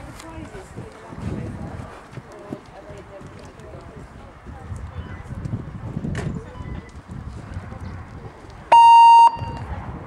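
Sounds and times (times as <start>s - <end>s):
pony hoofbeats on sand: 0.0s - 6.1s.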